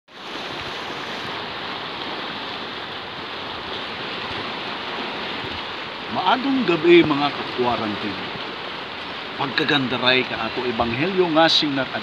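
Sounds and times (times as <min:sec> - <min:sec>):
surf washing against rocks: 0:00.1 - 0:12.0.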